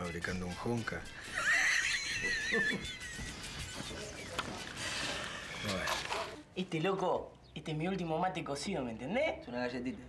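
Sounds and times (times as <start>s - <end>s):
high horse-like whinny: 4.8s - 6.4s.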